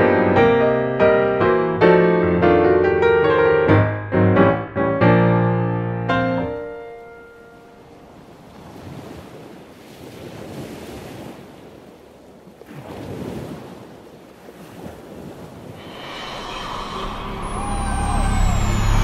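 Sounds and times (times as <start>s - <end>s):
sea waves washing: 6.5s - 19.0s
music with high sweep: 15.8s - 19.0s.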